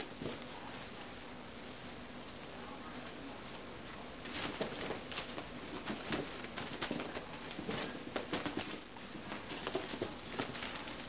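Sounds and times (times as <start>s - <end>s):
cat paws scampering on carpet: 4.2s - 11.0s.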